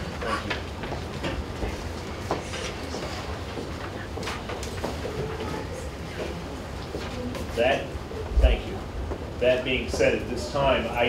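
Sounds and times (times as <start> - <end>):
footsteps: 0.0 - 10.2
knocks and shuffles: 0.0 - 10.2
steady low hum: 0.0 - 11.0.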